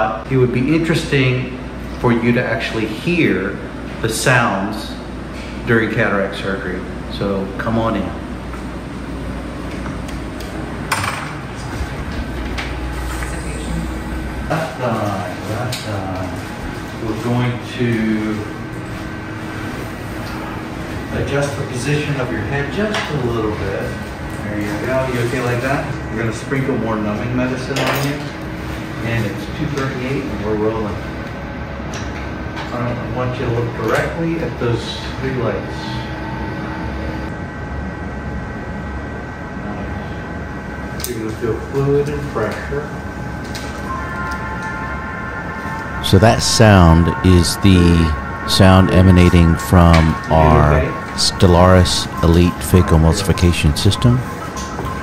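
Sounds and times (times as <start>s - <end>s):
steady electronic tones: 43.8s - 55.0s
air handling hum and hiss: 45.7s - 54.3s.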